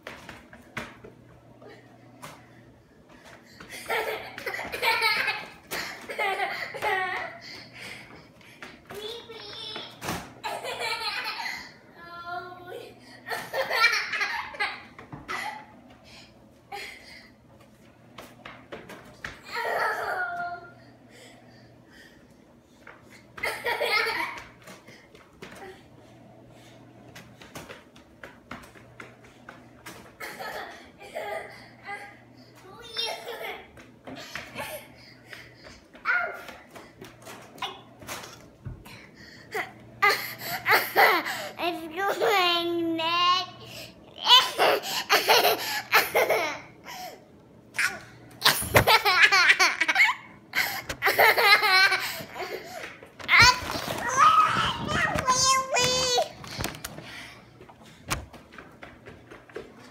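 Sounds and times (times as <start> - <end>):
toddler laughing: 3.7 - 7.6, 10.4 - 11.7, 13.3 - 15.6, 19.5 - 20.6, 23.4 - 24.4, 30.2 - 32.0, 39.5 - 41.5, 44.2 - 46.7, 47.8 - 53.8
light footsteps on hardwood floor: 50.8 - 59.9.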